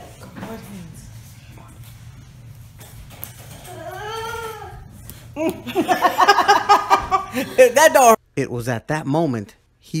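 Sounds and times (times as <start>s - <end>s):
man laughing hard: 5.6s - 7.8s.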